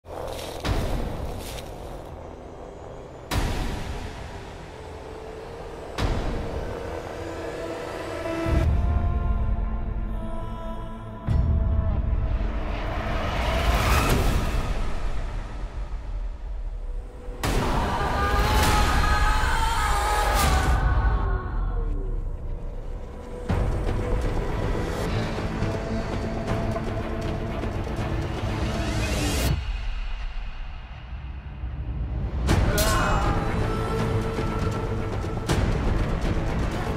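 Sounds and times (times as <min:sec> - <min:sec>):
dramatic trailer music: 0:00.0 - 0:36.9.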